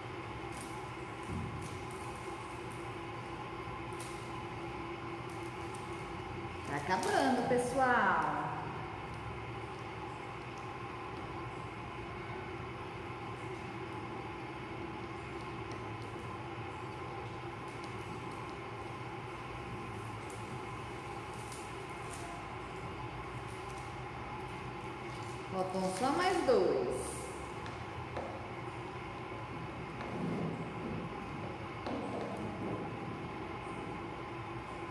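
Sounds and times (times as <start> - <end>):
mechanical room hum: 0.0 - 34.9.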